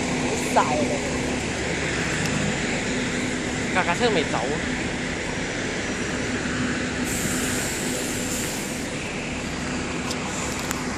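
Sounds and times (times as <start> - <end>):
bus engine droning: 0.0 - 10.9
street traffic: 0.0 - 10.9.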